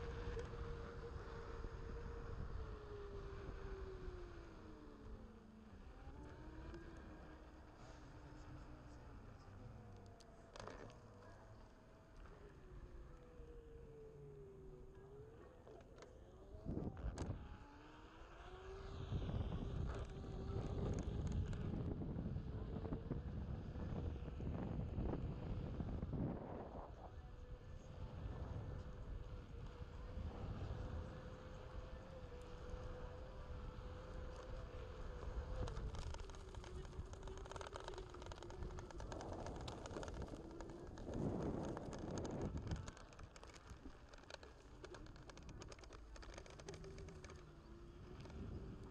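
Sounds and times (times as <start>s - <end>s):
faint steady hum: 0.0s - 48.9s
small ticks: 9.9s - 11.4s, 30.9s - 48.9s
wind on microphone: 18.7s - 48.9s
tire rumbling over grass and dirt: 19.0s - 48.9s.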